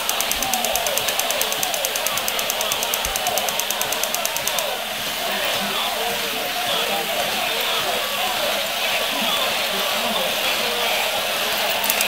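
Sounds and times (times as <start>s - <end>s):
rapid clicking rattle: 0.0s - 4.8s, 11.6s - 12.0s.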